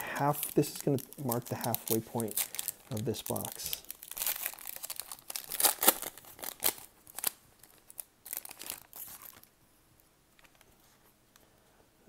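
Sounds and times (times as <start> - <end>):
foil wrapper crackling: 0.2 - 9.4.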